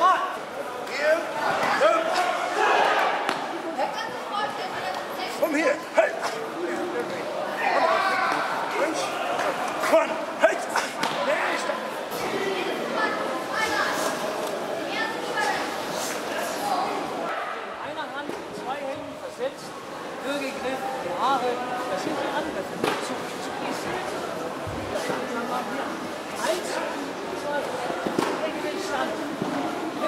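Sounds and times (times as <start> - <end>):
crowd talking in echoing hall: 0.0 - 30.0.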